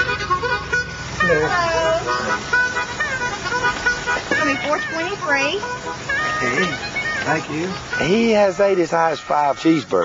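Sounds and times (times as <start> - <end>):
car engine idling: 0.0 - 10.0
indistinct voices talking: 1.2 - 10.0.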